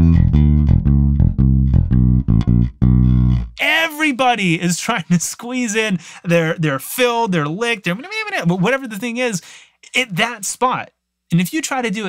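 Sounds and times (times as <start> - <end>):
electric bass blues line: 0.0 - 3.6.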